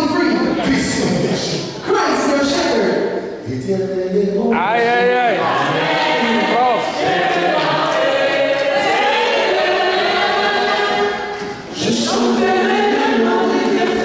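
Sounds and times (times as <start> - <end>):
voices singing a hymn: 4.9 - 14.0.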